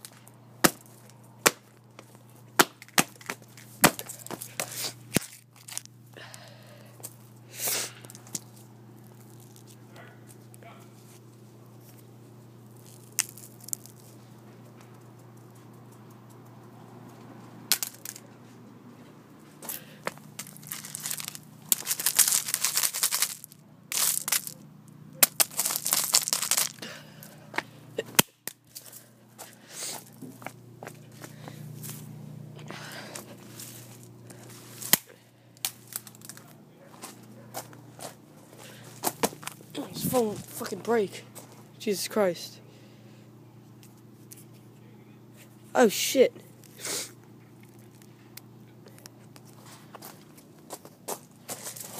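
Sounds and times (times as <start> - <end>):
gravel crunching and rattling: 12.7 - 35.0, 35.6 - 41.7, 48.9 - 51.9
phone cracking against stone: 17.7 - 18.2, 20.3 - 24.6, 25.2 - 26.8, 34.8 - 36.4.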